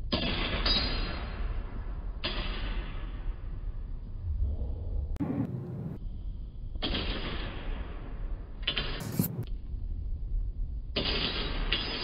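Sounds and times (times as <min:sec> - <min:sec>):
swords clashing and scraping: 0:08.7 - 0:09.5.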